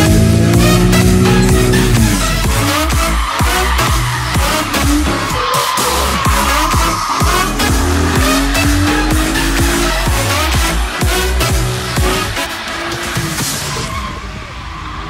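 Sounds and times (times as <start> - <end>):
electronic music with beat: 0.0 - 13.7
tyres squealing: 0.0 - 14.3
car engine revving: 0.0 - 15.0.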